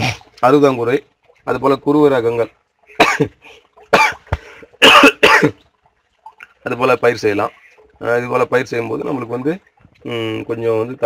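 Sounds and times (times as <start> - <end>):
man coughing: 2.9 - 3.4, 4.0 - 5.6
man clearing throat: 3.0 - 3.4, 4.0 - 5.6.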